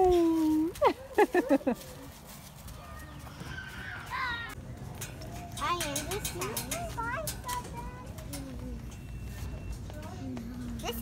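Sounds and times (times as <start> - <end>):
footsteps on wood-chip mulch: 0.0 - 5.3.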